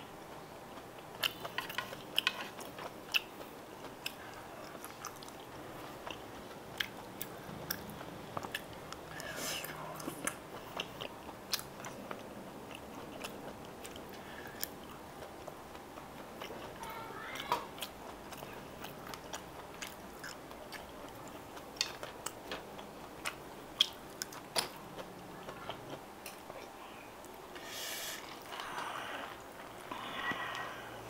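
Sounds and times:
person chewing food: 0:00.2 - 0:31.0
breathy sound: 0:27.6 - 0:31.0.

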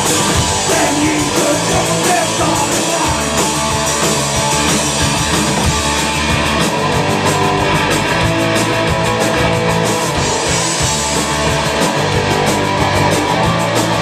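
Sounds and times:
punk rock band playing: 0:00.0 - 0:14.0.

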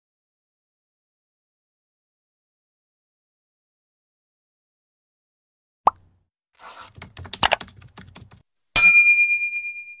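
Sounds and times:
bell-like notification ding: 0:08.8 - 0:10.0.

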